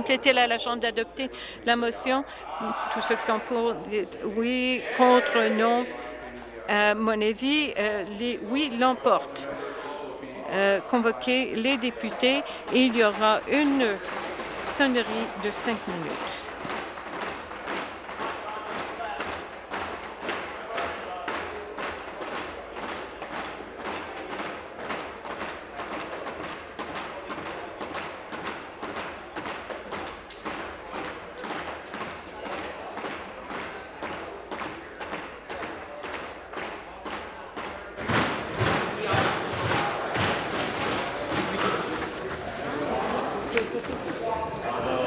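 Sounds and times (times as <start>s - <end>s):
murmur of voices: 0.0s - 45.0s.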